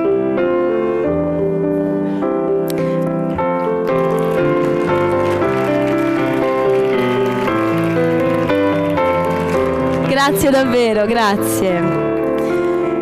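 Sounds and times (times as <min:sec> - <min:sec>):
piano melody: 0:00.0 - 0:13.0.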